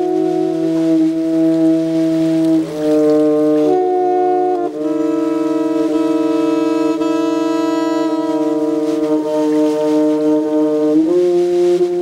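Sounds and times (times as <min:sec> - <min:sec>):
bowed double bass: 0:00.0 - 0:12.0
saxophone holding notes: 0:00.0 - 0:12.0.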